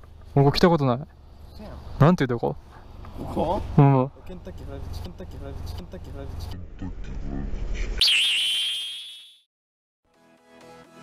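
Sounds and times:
high-pitched sound effect tone: 0:08.0 - 0:09.4.

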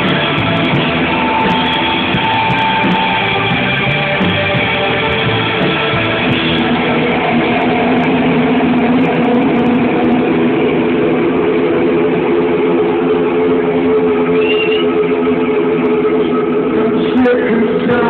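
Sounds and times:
rock band guitar drone: 0:00.0 - 0:18.0.

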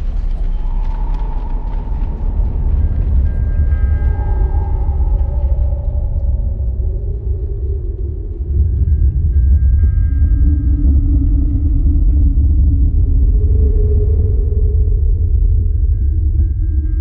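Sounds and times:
deep sustained rumble: 0:00.0 - 0:17.0
slow gliding low drones: 0:00.0 - 0:17.0.

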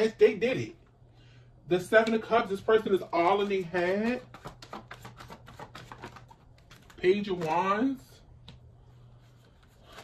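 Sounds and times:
cards clicking and flicking: 0:02.0 - 0:07.8.

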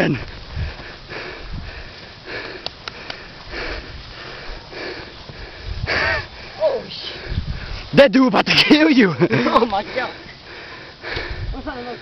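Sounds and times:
person breathing hard: 0:00.2 - 0:07.9, 0:09.8 - 0:12.0.

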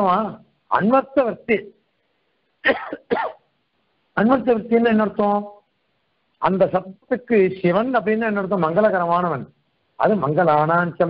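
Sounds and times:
man clearing his throat: 0:02.6 - 0:03.4.

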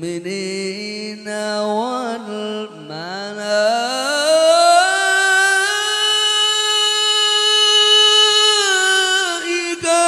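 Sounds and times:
man reciting melodically over pa: 0:00.0 - 0:10.0.

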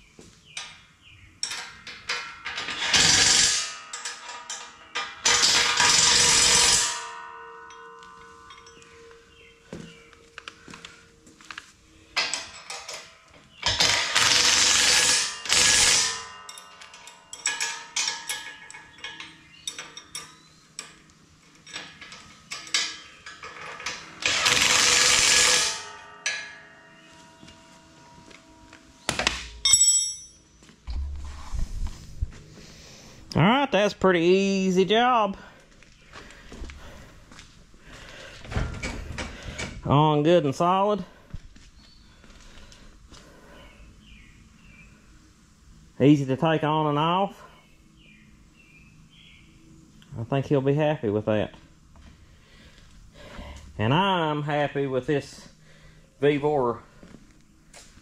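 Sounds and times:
metal clinks and ringing: 0:01.4 - 0:31.2.

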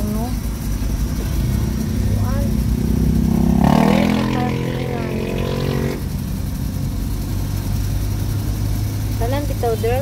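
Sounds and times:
engine and road rumble: 0:00.0 - 0:10.0
engine revving up: 0:01.1 - 0:09.4.

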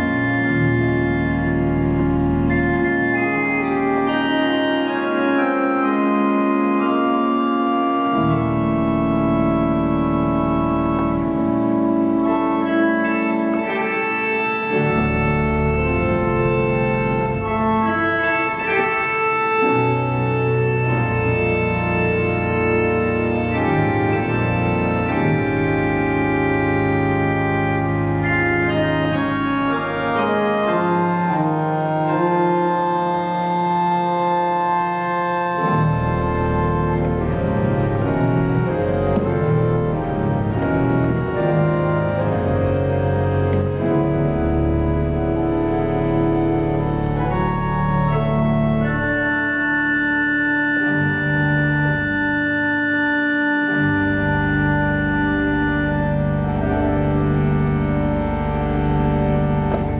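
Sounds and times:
deep pedal bass notes: 0:00.0 - 0:59.9
pipe organ chords: 0:00.0 - 0:59.9.

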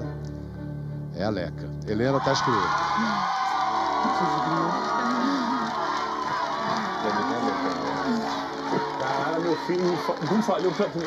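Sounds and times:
background music: 0:00.0 - 0:11.0
people shouting and cheering: 0:02.0 - 0:11.0.

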